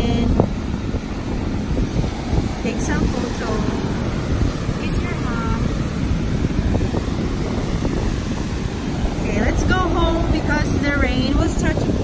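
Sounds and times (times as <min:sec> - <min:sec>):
breaking surf: 0:00.0 - 0:12.0
wind buffeting microphone: 0:00.0 - 0:12.0.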